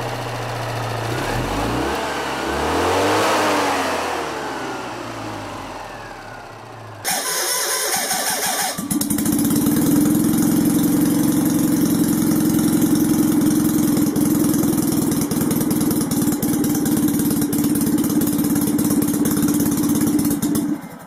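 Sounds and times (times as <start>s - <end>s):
engine idling: 0.0s - 21.0s.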